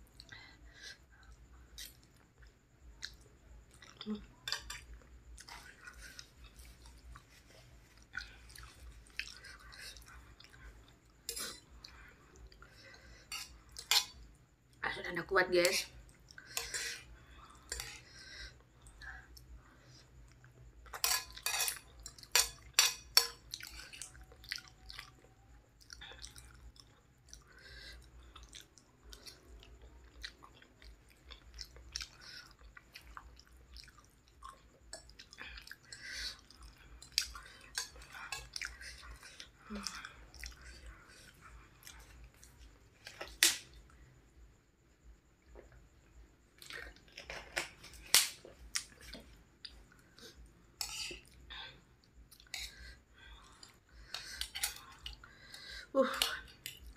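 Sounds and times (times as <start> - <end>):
person chewing noodles: 0.1 - 4.2, 4.8 - 14.3, 16.0 - 44.1, 45.3 - 55.7
cutlery clinking on a plate: 21.0 - 23.4.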